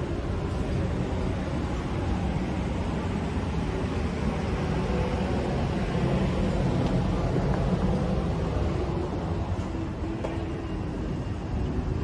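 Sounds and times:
low rumbling city ambience: 0:00.0 - 0:12.0.

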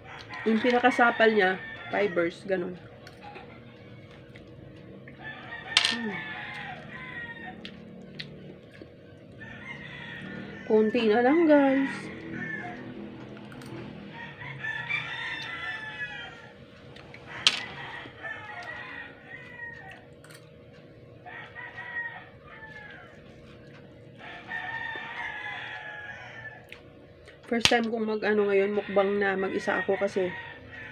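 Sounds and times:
faint steady hum: 0:00.0 - 0:30.9.

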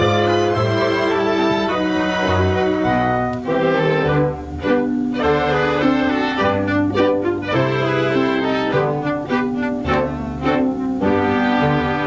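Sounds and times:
pit orchestra playing: 0:00.0 - 0:12.0
violins: 0:00.0 - 0:12.0.

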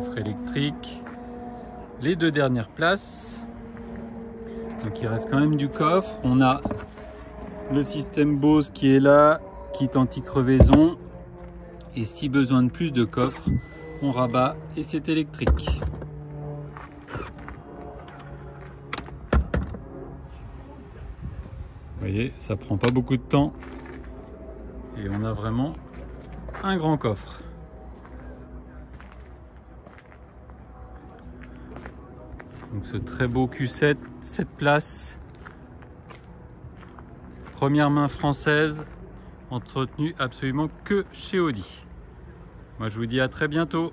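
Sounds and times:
footsteps on gravel: 0:00.9 - 0:01.3, 0:16.7 - 0:18.8, 0:25.0 - 0:33.4, 0:35.2 - 0:37.8
electric seat motor humming: 0:13.2 - 0:14.4.

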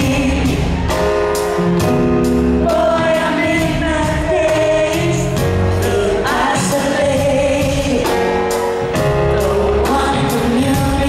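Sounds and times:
backing band: 0:00.0 - 0:11.0
women singing in harmony: 0:02.6 - 0:08.2.

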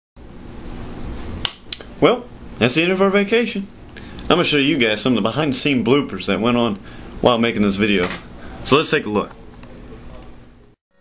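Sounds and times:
low room hum: 0:00.2 - 0:10.8.

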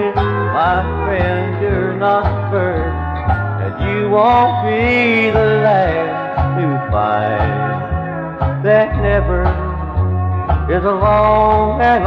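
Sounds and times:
country band playing instrumental: 0:00.0 - 0:12.0.

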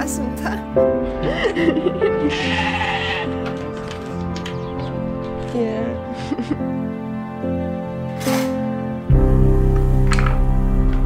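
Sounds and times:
background music: 0:00.0 - 0:11.0
sheep bleating: 0:02.2 - 0:03.5.

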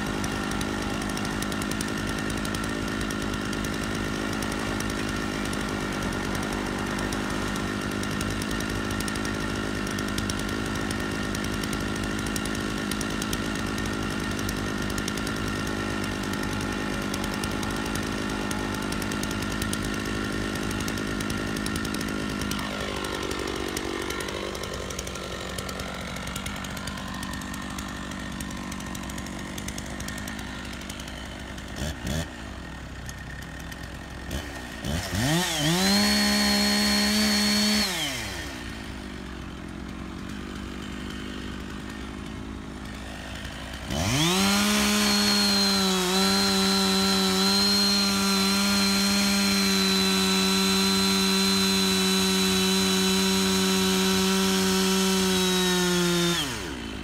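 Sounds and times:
chainsaw starting and revving: 0:00.0 - 0:57.0
tractor diesel engine running: 0:00.0 - 0:57.0.

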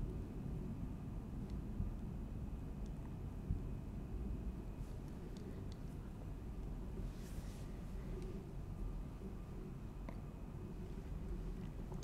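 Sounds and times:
soft hiss: 0:02.8 - 0:12.0.

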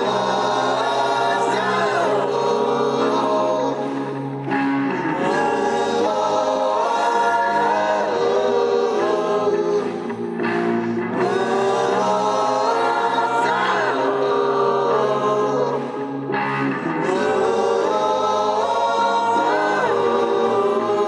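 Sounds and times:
rock band playing live: 0:00.0 - 0:18.3.

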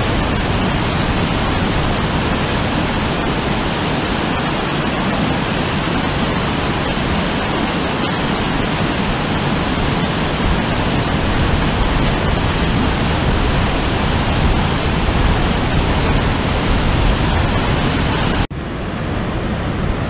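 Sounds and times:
waterfall rushing over rock steps: 0:00.0 - 0:18.5.

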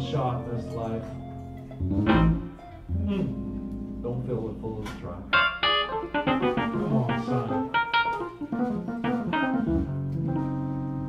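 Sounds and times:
keyboard jazz chords: 0:00.0 - 0:11.0
low bass note: 0:01.1 - 0:07.8.

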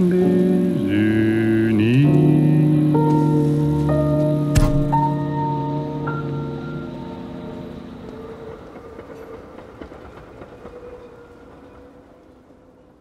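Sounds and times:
held notes of a song: 0:00.0 - 0:08.2.

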